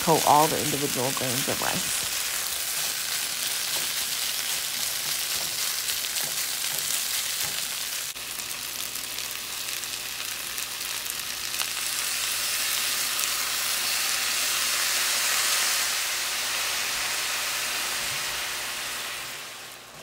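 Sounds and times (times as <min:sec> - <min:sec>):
food sizzling in a pan: 0:00.0 - 0:20.0.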